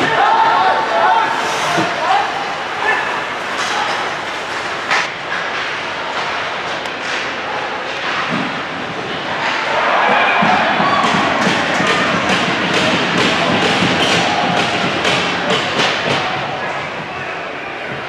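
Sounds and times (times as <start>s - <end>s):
steady hall rumble: 0.0s - 18.0s
stick and puck clacks: 3.4s - 17.2s.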